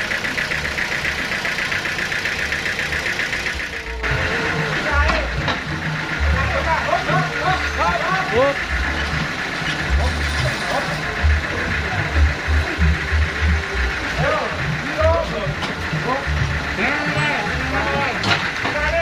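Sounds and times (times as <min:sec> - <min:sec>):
band sawmill running: 0:00.0 - 0:19.0
music with pulsing bass: 0:02.5 - 0:19.0.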